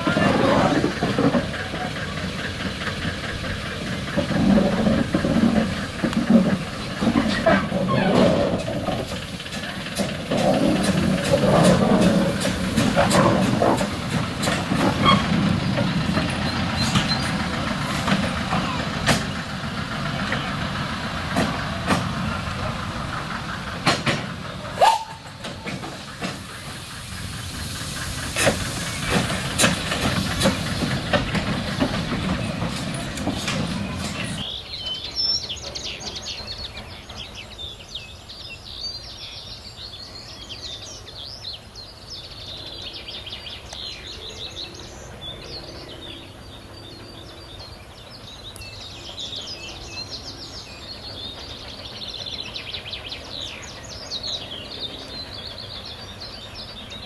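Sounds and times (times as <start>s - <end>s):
running gear knocking and clanking: 0.0s - 26.5s, 28.0s - 37.5s
steam hissing: 0.0s - 34.5s
steam locomotive moving slowly: 0.0s - 57.0s.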